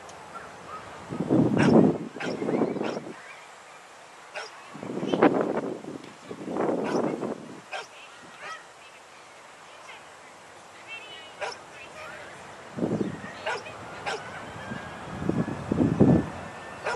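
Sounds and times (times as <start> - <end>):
distant dog barking: 1.6 - 3.1, 4.3 - 4.6, 6.8 - 8.6, 11.4 - 11.6, 13.3 - 14.4.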